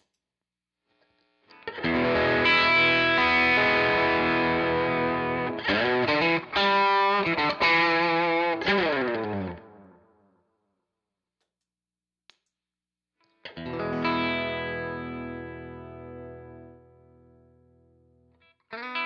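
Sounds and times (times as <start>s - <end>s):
overdriven electric guitar: 1.5s - 10.0s, 13.4s - 19.0s.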